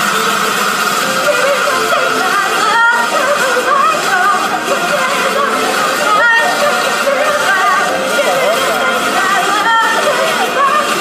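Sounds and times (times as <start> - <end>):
loud steady noise in hall: 0.0 - 11.0
person singing amplified: 1.0 - 11.0.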